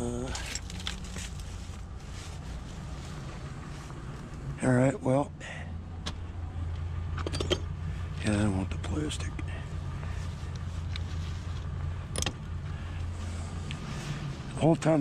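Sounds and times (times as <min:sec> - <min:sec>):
vehicle engine idling hum: 0:00.0 - 0:15.0.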